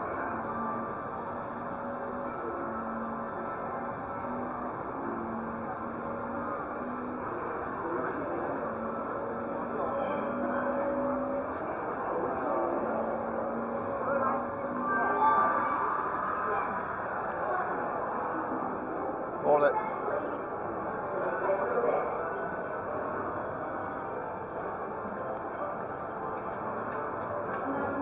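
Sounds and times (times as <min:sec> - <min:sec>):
murmur of many voices: 0:00.0 - 0:28.0.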